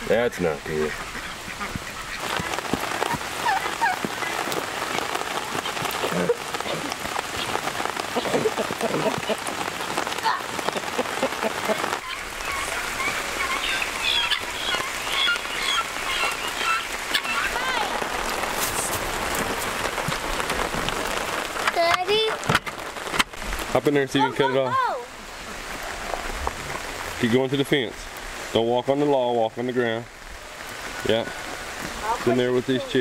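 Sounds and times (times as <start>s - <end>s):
rain hissing: 0.0s - 33.0s
poultry calling: 0.7s - 9.1s, 10.7s - 18.1s.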